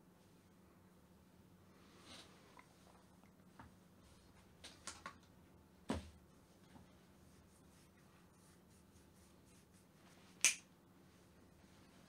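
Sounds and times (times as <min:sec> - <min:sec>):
faint steady hum: 0:00.0 - 0:12.0
finger snap: 0:10.4 - 0:10.7.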